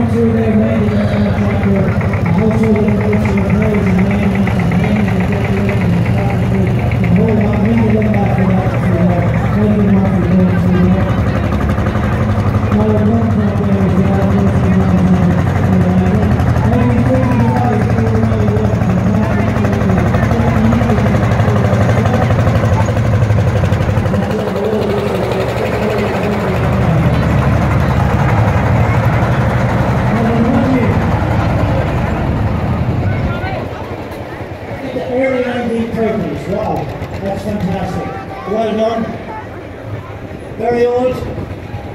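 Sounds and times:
background voices: 0.0 - 41.9
tractor engine running: 0.0 - 41.9.

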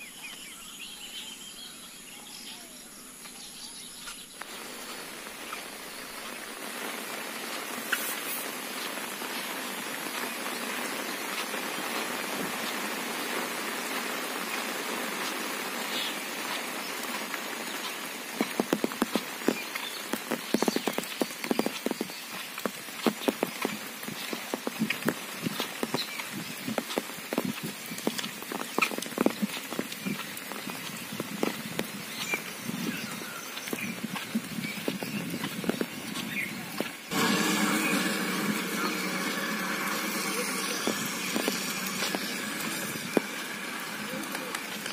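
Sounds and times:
steady rain falling: 0.0 - 44.9
raindrops tapping on umbrella: 4.4 - 44.9.

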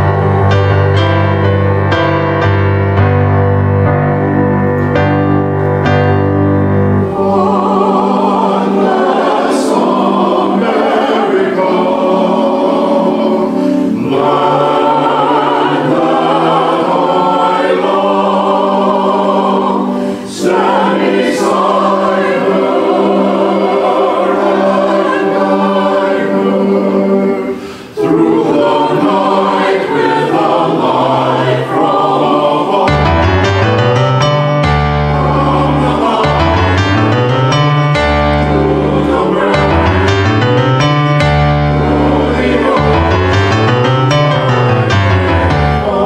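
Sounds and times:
church choir singing: 0.0 - 46.0.

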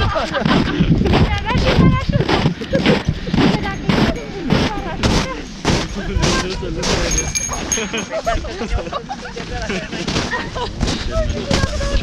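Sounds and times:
indistinct talking: 0.0 - 12.0
footsteps crunching in snow: 0.2 - 12.0.

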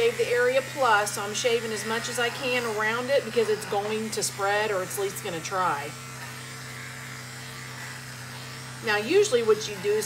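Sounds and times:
electric pet clippers buzzing: 0.0 - 10.0.

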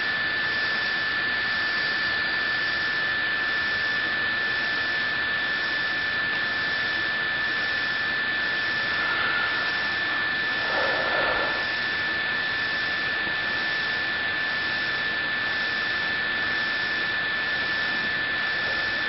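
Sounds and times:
high-pitched whine: 0.0 - 19.0.

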